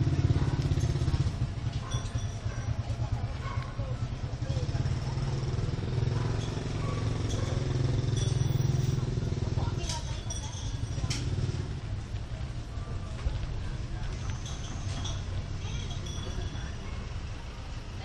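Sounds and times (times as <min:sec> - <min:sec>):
engine running: 0:00.0 - 0:03.4, 0:04.1 - 0:18.0.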